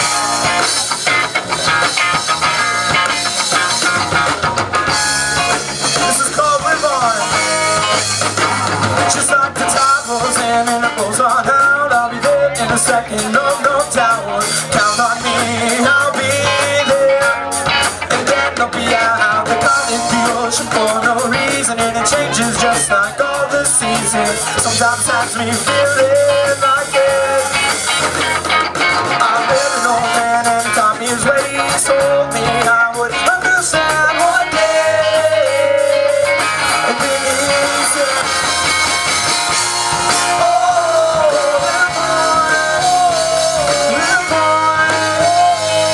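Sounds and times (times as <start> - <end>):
bass guitar: 0.0 - 45.9
drum kit beat: 0.0 - 45.9
electric guitar: 0.0 - 45.9
rock band playing live: 0.0 - 45.9.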